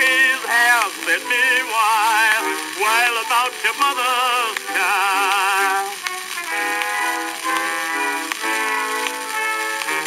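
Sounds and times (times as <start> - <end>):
record surface hiss: 0.0 - 10.0
band playing held notes: 0.1 - 10.0.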